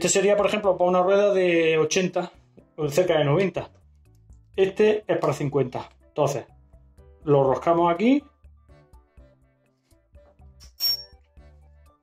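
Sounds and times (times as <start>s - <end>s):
soft background music: 0.0s - 12.0s
metallic clink: 10.6s - 11.2s.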